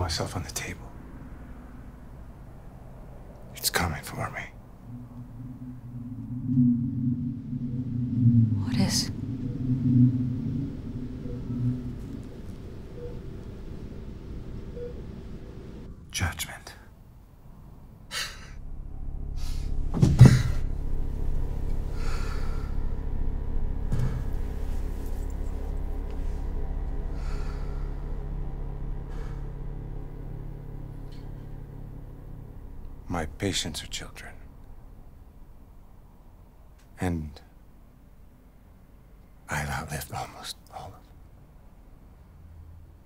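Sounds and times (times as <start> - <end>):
low droning rumble: 0.0 - 36.9
dark tense film score: 0.0 - 43.0.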